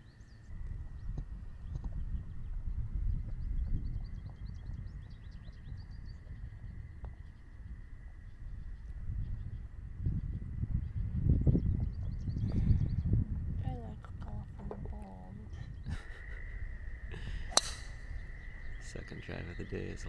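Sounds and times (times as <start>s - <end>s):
birds chirping: 0.0s - 20.0s
wind rumbling on microphone: 0.0s - 20.0s.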